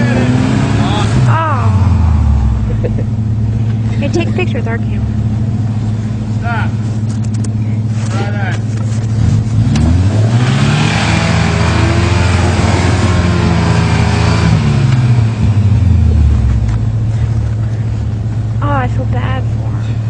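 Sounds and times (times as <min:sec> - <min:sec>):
truck engine revving hard: 0:00.0 - 0:06.6, 0:09.1 - 0:17.5.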